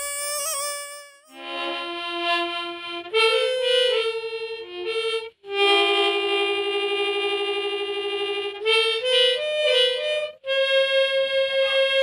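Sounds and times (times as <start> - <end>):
reedy wind instrument note: 0.0 - 1.9.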